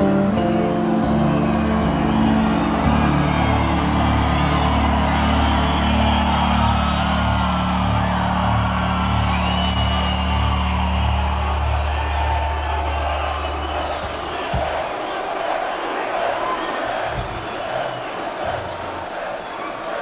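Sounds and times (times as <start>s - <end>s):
bass and guitar drone notes: 0.0s - 14.0s
crowd cheering: 0.0s - 20.0s
whistles from crowd: 1.0s - 20.0s.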